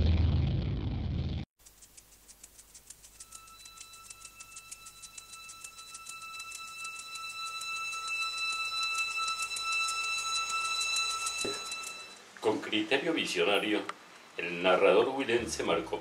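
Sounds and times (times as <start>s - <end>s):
rapid clock-like ticking: 1.6s - 12.2s
steady high ringing tone: 3.1s - 12.2s.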